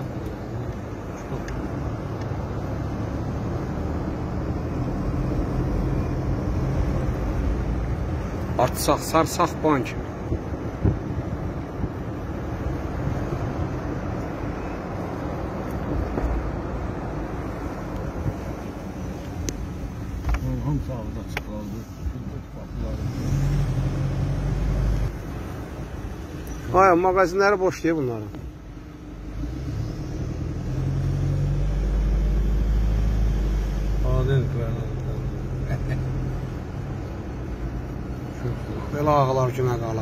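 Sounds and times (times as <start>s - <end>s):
car engine and tyre rumble: 0.0s - 40.0s.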